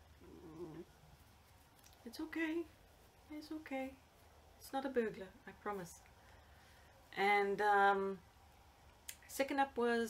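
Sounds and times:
dog grumbling: 0.2s - 0.9s.

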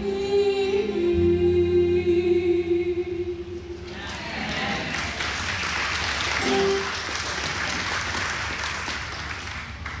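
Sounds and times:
congregation applauding: 4.1s - 10.0s.

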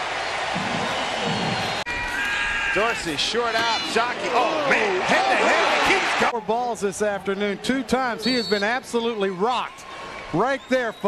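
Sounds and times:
stadium crowd cheering and applauding: 0.0s - 11.0s.

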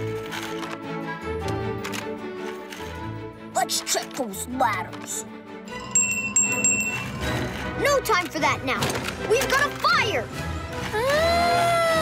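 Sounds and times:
desk service bell dings: 5.8s - 7.2s.

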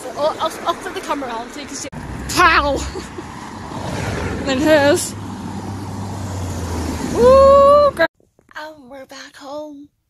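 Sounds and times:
road traffic rumble and hiss: 0.0s - 8.1s.

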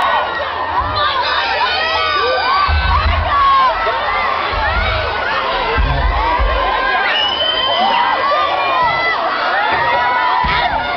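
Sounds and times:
concert crowd cheering and screaming: 0.0s - 10.9s
low thumps: 2.6s - 7.0s.

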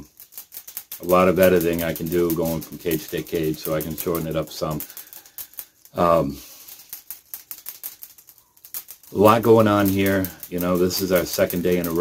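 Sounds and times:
rabbits rattling wire cages: 0.0s - 12.0s.

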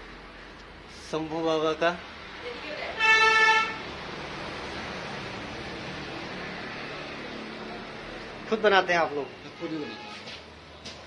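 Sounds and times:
street traffic noise: 0.0s - 11.0s
vehicle horn honk: 3.0s - 3.8s, 9.4s - 10.4s.

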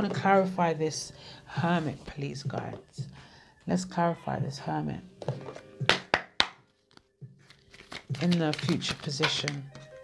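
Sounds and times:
quiet background music: 0.0s - 10.0s
cards tapping on a table: 5.2s - 6.6s.

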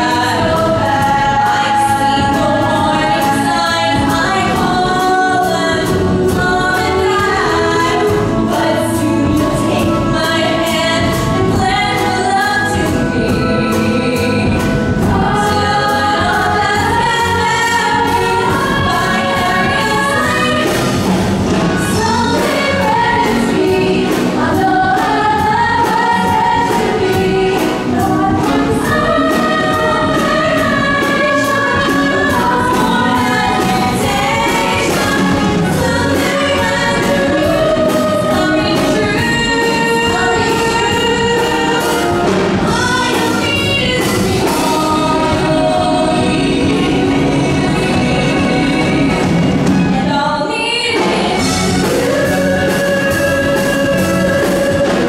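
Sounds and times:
ensemble singing in chorus: 0.0s - 55.0s
pop band with keyboard and guitars: 0.0s - 55.0s.

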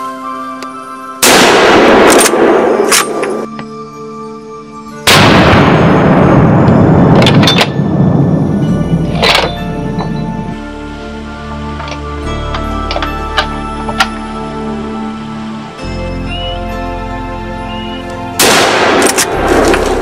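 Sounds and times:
background music: 0.0s - 20.0s
rifle shots with rolling echo: 1.2s - 3.5s, 5.1s - 8.1s, 18.4s - 20.0s.

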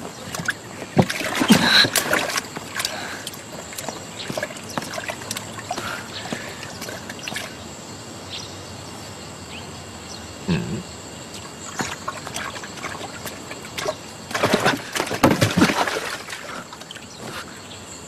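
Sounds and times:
water sloshing in buckets: 0.0s - 7.7s, 11.4s - 17.6s
sharp wooden knocks: 14.4s - 15.9s.

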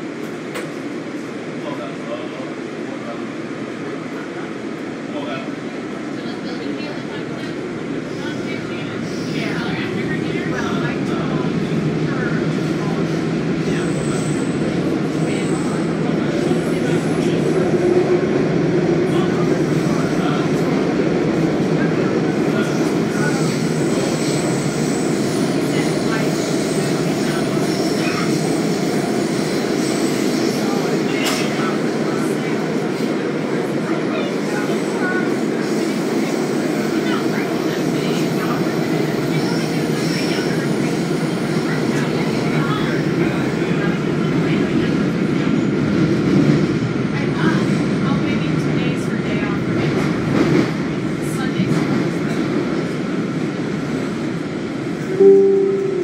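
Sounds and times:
rumble of train wheels on rail: 0.0s - 55.2s.

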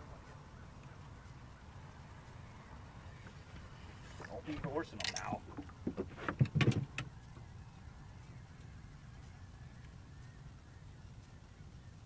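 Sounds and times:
knocks and thumps on a boat: 5.4s - 7.1s
steady low rumble: 6.8s - 12.0s.

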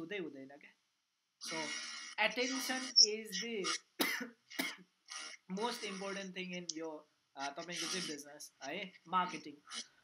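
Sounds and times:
man speaking over a video call: 0.0s - 0.8s, 1.4s - 4.5s, 5.2s - 10.0s
short coughs: 4.0s - 4.8s.

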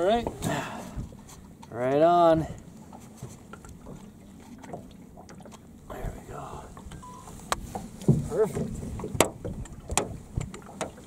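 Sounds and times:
knocks against aluminum boat: 7.6s - 11.0s.

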